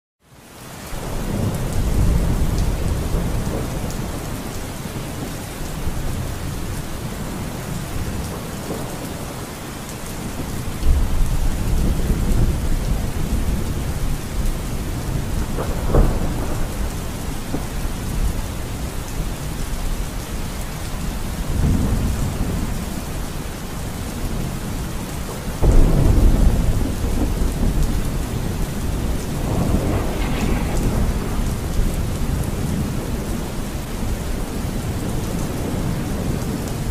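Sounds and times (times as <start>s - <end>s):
steady rain: 0.2s - 36.9s
thunder rumbling: 1.0s - 36.9s
sharp thunder crack: 15.0s - 17.7s, 25.6s - 33.6s.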